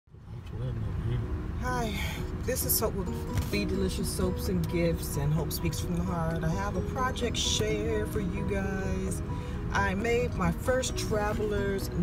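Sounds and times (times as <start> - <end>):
car cabin rumble: 0.2 - 12.0.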